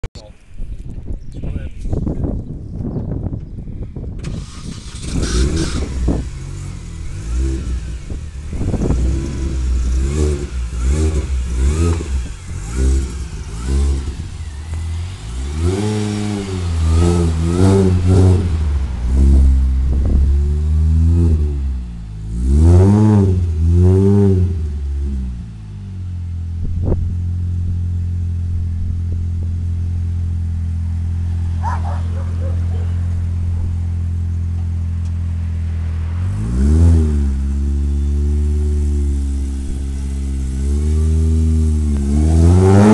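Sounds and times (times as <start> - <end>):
car engine revving and idling: 4.2 - 42.9.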